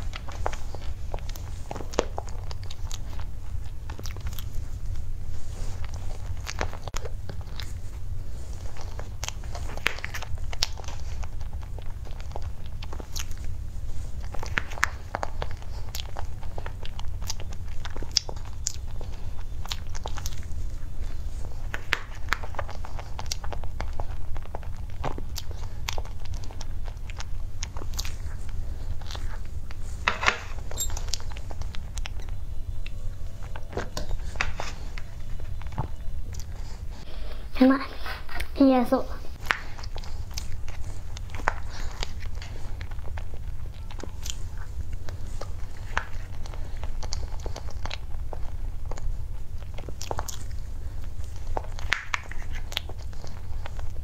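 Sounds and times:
mouth clicks and chewing: 0.0 - 38.6, 39.2 - 54.0
steady low hum: 0.0 - 54.0.

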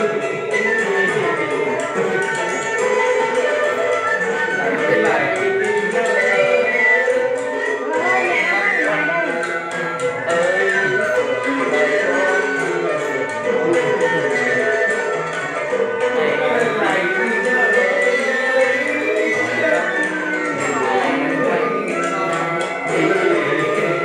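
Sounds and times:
instrumental accompaniment: 0.0 - 24.0
man singing: 4.3 - 24.0.

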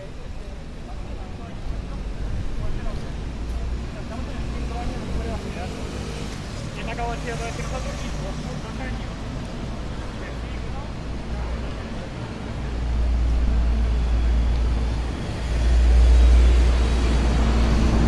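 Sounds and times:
passers-by talking: 0.0 - 18.0
road traffic rumble: 0.0 - 18.0.

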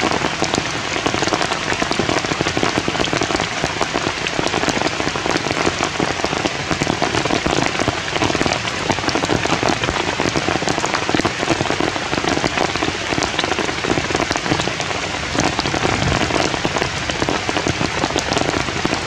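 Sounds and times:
heavy rain falling: 0.0 - 19.0.

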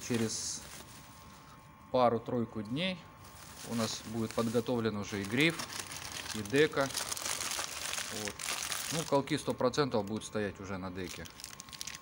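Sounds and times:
plastic packaging crinkling: 0.0 - 1.4, 3.2 - 10.3, 10.9 - 12.0.

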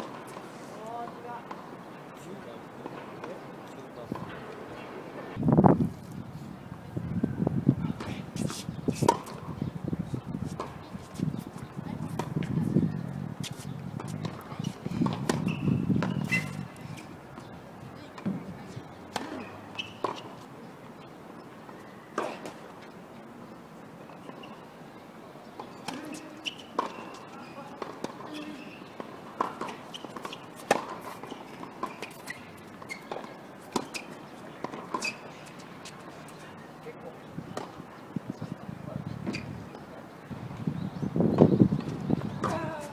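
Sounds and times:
tennis balls bouncing on court: 0.0 - 1.8, 2.8 - 4.9, 8.0 - 9.7, 10.4 - 21.0, 21.6 - 23.0, 25.4 - 38.4, 39.2 - 42.9
tennis balls struck by rackets: 7.9 - 9.7, 10.4 - 12.6, 13.4 - 20.6, 22.1 - 23.0, 25.4 - 36.4, 37.0 - 38.4, 41.3 - 42.9.

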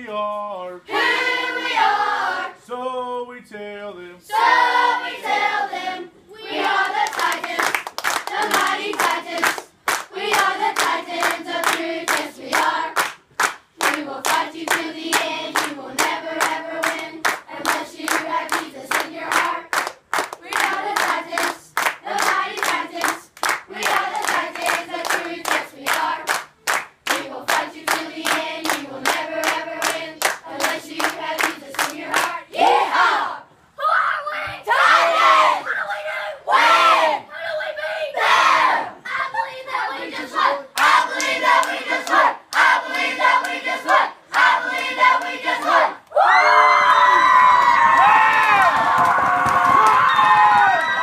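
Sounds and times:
group singing: 0.9 - 2.6, 4.2 - 13.1, 13.8 - 26.5, 27.1 - 33.4, 38.2 - 46.0
hands clapping in rhythm: 6.6 - 32.4, 40.8 - 45.8, 47.2 - 51.0
children cheering and shouting: 46.1 - 51.0.

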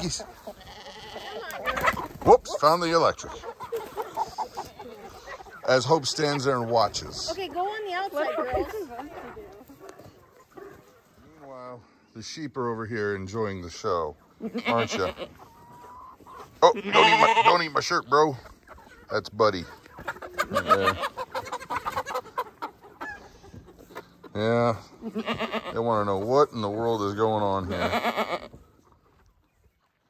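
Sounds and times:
hens clucking: 0.0 - 30.0.

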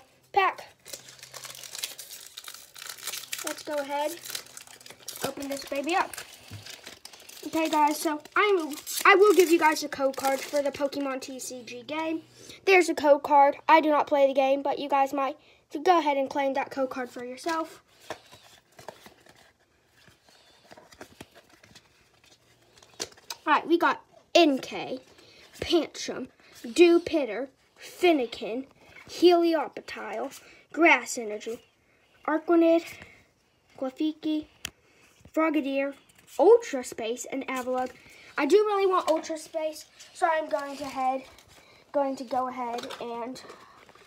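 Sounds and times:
foil wrapper crinkling: 0.4 - 11.4, 17.9 - 23.5, 37.8 - 44.0
trading cards clicking and rustling: 0.4 - 11.4, 17.4 - 23.5, 36.1 - 44.0.

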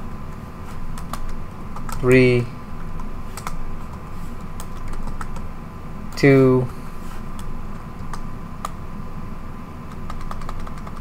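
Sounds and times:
keyboard keystrokes: 4.6 - 5.4, 9.9 - 11.0.

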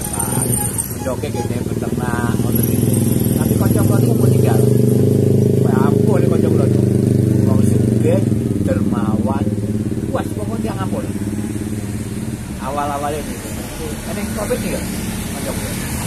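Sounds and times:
people talking: 0.0 - 4.9, 5.6 - 11.2, 12.6 - 16.0
motorcycle engine running: 0.0 - 16.0.

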